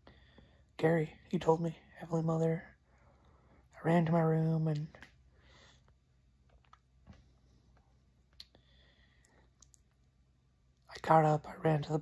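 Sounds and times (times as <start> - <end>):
man speaking: 0.8 - 2.8, 3.7 - 5.0, 10.9 - 12.0.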